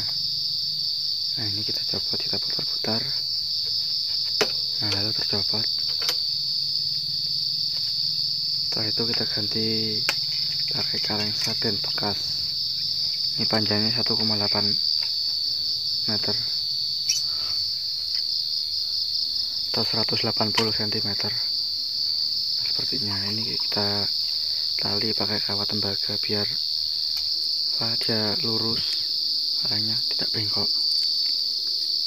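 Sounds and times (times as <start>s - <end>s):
high-pitched insect chorus: 0.0s - 32.0s.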